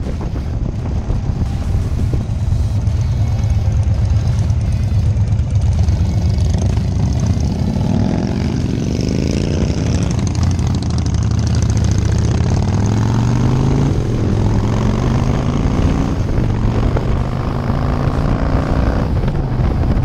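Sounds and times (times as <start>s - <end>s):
motorcycle engine rumbling: 0.0s - 20.0s.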